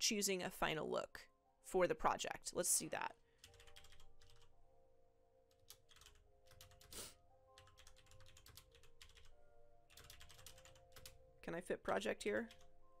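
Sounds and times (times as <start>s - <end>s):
quiet background music: 0.0s - 13.0s
faint keyboard typing: 3.4s - 4.5s, 5.5s - 11.2s, 11.8s - 12.8s.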